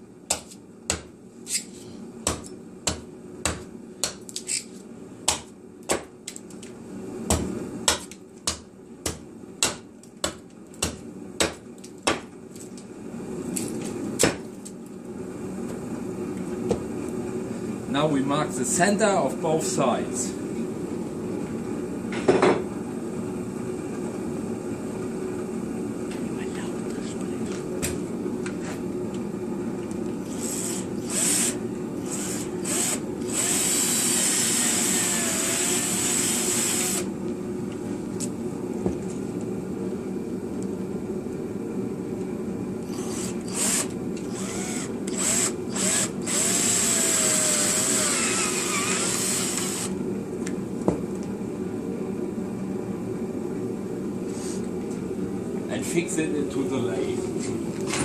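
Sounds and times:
steady low hum: 0.0 - 58.0
cordless drill boring into wood: 30.3 - 37.1, 42.9 - 49.9.

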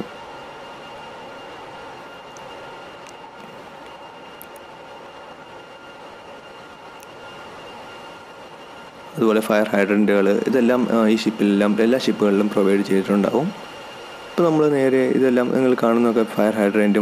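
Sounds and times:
engine room machinery running: 0.0 - 17.0
faint constant whines: 0.0 - 17.0.

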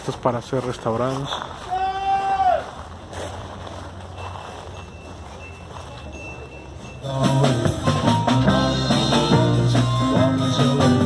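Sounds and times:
faint high beeping: 4.2 - 8.3.

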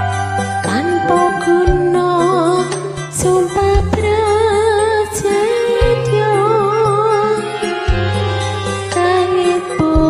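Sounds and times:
music backing track: 0.0 - 10.0
woman singing with vibrato: 0.6 - 7.8, 8.9 - 10.0.

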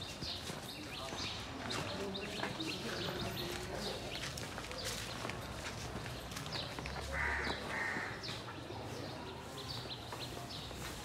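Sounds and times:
birds chirping: 0.0 - 11.0
loud bird calls: 6.6 - 8.6.

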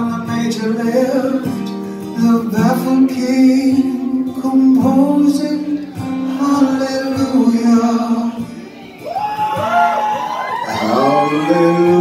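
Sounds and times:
strummed acoustic guitar: 0.0 - 12.0
audience whooping: 8.6 - 12.0
person singing: 10.6 - 12.0.

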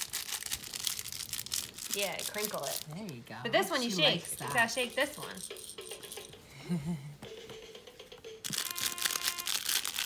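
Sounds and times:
crinkle toy rustling: 0.0 - 6.4, 8.4 - 10.0.

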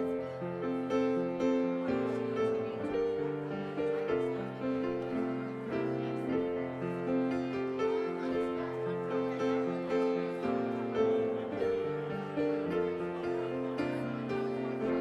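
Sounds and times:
slow piano music: 0.0 - 15.0.

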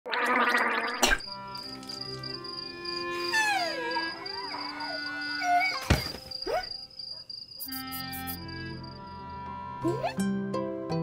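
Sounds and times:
cartoon bubbling gargle: 0.0 - 1.2
steady high tone: 1.3 - 5.6.

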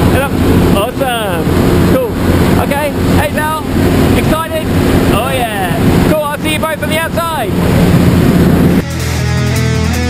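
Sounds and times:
man talking: 0.0 - 7.6
plane engine and propeller drone: 0.0 - 8.8.

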